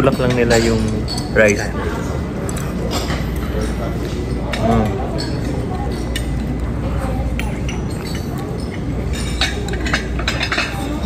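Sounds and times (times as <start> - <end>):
people talking: 0.0 - 11.0.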